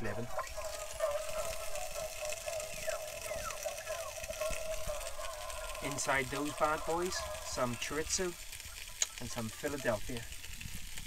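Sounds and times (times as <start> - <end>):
chicken sizzling in a pan: 0.0 - 11.0.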